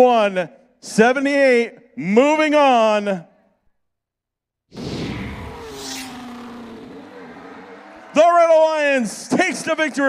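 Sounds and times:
whooshing sound effect: 4.7 - 8.4
low rumble: 4.8 - 8.6.

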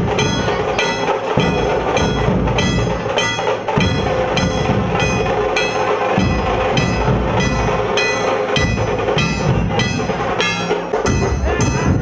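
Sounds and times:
large drum beating: 0.0 - 12.0
ringing metallic strikes: 0.0 - 12.0.

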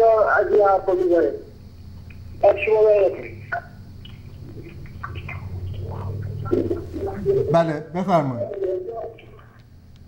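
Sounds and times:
telephone line hum: 2.1 - 9.6
garbled voice fragments: 2.5 - 9.4.

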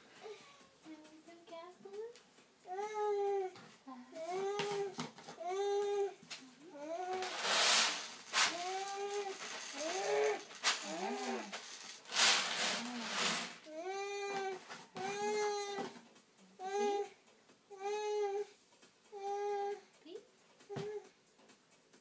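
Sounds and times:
dry cat food rattling into a bowl: 7.2 - 13.8.

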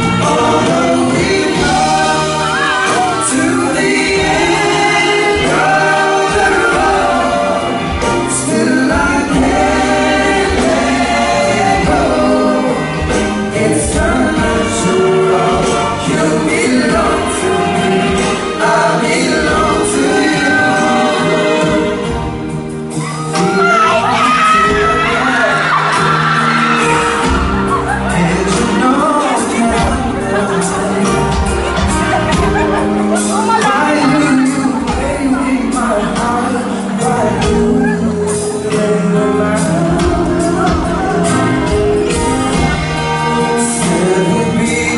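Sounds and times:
drums: 0.0 - 44.9
keyboards: 0.0 - 44.9
male vocal group singing in harmony: 0.0 - 44.9.

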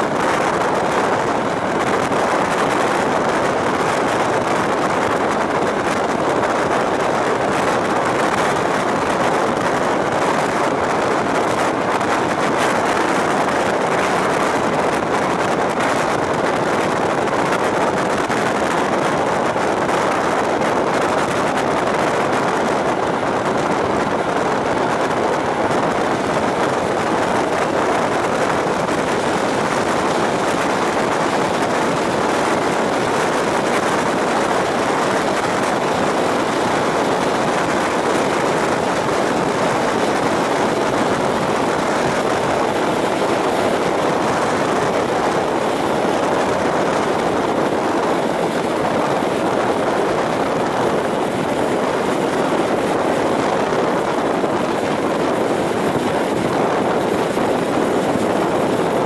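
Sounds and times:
train rushing air and rail noise: 0.0 - 59.0.

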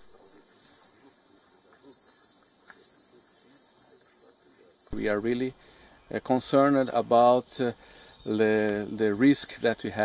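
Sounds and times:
tamarin high-pitched whistles: 0.0 - 2.6.

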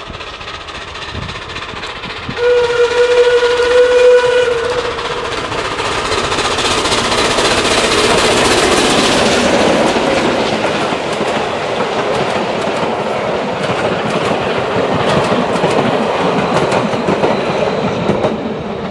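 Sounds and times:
steam hissing: 0.0 - 18.9
train wheels clicking over rail joints: 0.0 - 18.9.

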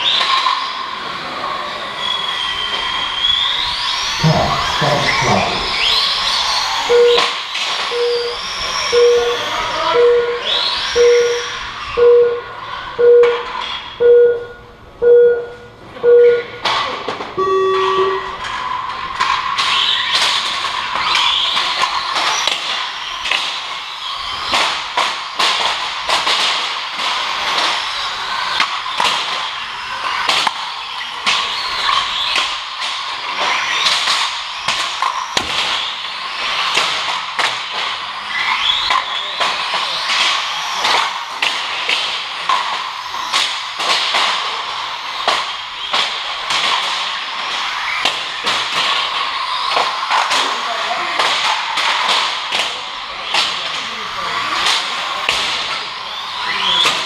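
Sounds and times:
rc car motors and tyres: 0.0 - 14.0, 17.1 - 57.0
short electronic beeps: 6.9 - 10.4, 11.0 - 16.6, 17.4 - 18.3
long low electronic tone: 17.4 - 18.3.

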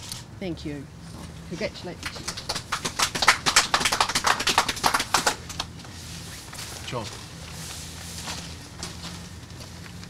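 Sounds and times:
crowd applauding: 2.0 - 5.7.

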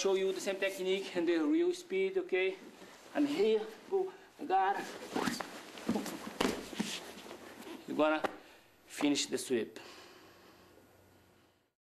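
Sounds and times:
fabric swishing: 4.8 - 7.8
bodies landing on mat: 5.1 - 7.2.

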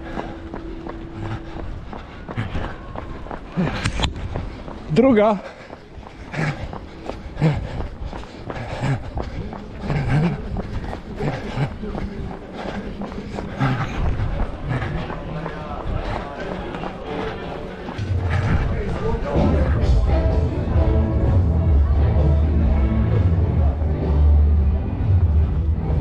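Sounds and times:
running footsteps on pavement: 0.0 - 20.3
voices: 0.0 - 24.9
music: 16.4 - 26.0.

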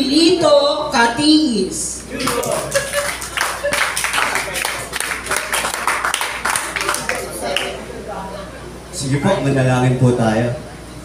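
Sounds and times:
voices: 0.0 - 11.0
audience applauding: 2.2 - 7.8.

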